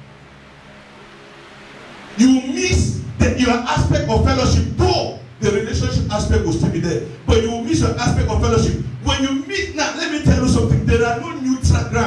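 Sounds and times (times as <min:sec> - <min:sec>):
faint low hum with hiss: 0:00.0 - 0:12.0.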